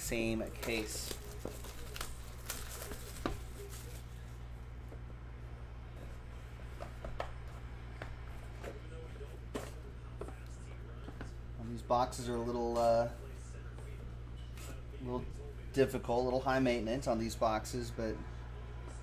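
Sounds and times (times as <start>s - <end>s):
steady low hum: 0.0s - 19.0s
plastic wrap crackling: 0.1s - 4.1s.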